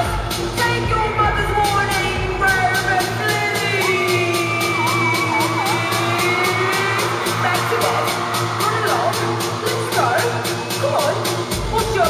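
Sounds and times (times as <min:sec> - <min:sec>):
crowd noise: 0:00.0 - 0:12.0
electronic dance music over speakers: 0:00.0 - 0:12.0.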